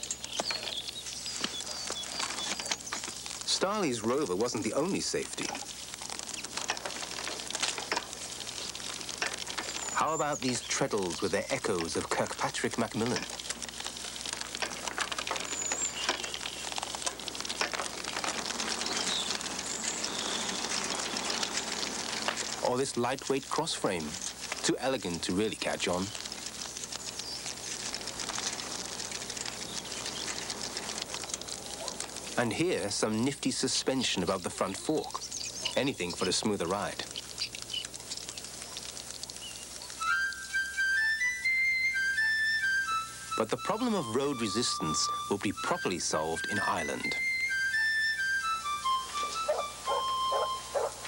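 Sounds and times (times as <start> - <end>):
high bird chirps: 0.0 - 3.2, 8.5 - 11.5, 15.2 - 17.1, 18.2 - 21.9, 35.0 - 36.4, 37.0 - 40.4
bicycle rattling and clicking: 0.0 - 32.9, 34.2 - 40.4
steady crackling noise: 0.0 - 51.0
steady hiss: 0.0 - 51.0.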